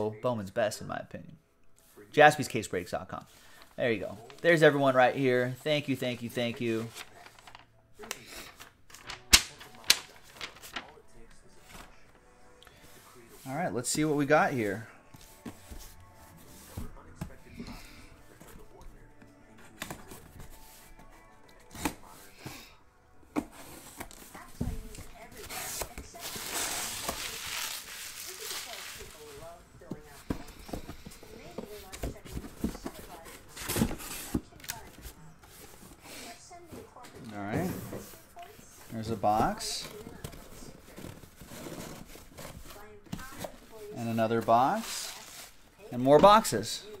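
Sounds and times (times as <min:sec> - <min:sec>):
cardboard box being handled: 0:23.3 - 0:36.0
bubble wrap crinkling: 0:25.1 - 0:29.6.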